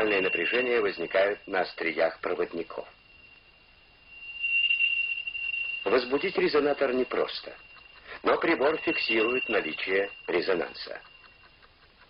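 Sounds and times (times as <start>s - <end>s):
high-pitched electronic tone: 0.0s - 11.5s.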